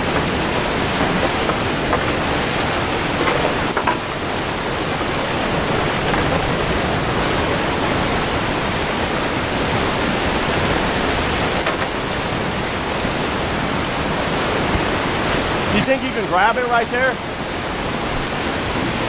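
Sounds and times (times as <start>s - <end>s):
water rushing over boulders: 0.0s - 19.0s.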